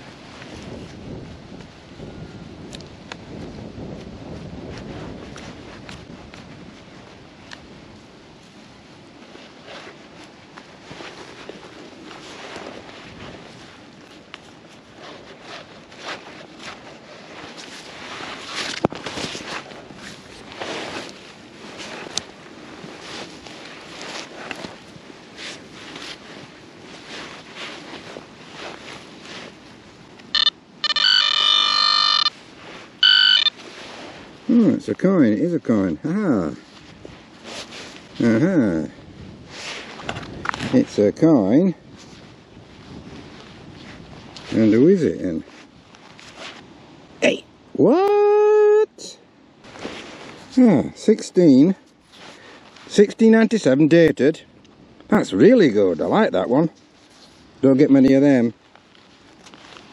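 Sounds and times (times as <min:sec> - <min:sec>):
metal detector pulsing buzz: 0:30.3 - 0:32.4, 0:33.0 - 0:33.6.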